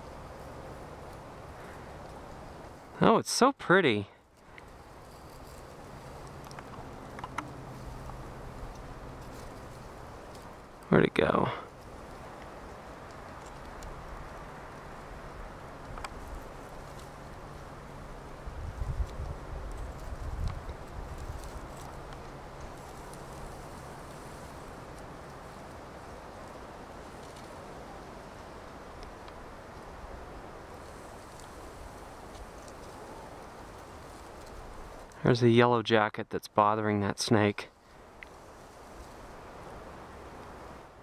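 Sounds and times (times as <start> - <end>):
steady hiss: 0.0 - 41.0.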